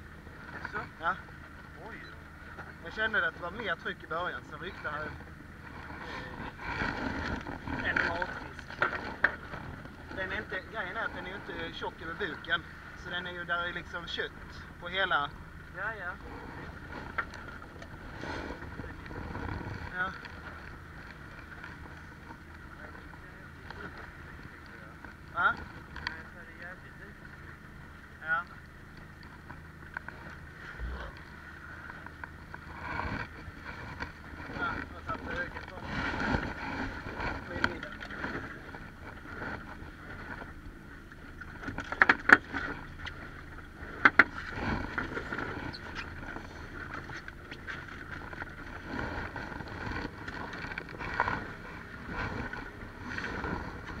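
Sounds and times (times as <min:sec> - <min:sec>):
water around boat: 0:00.0 - 0:54.0
wind: 0:00.0 - 0:54.0.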